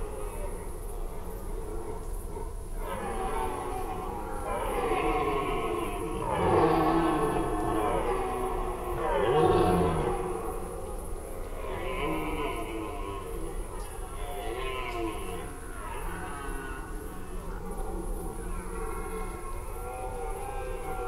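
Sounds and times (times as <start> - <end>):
deer stags roaring: 4.6 - 13.2.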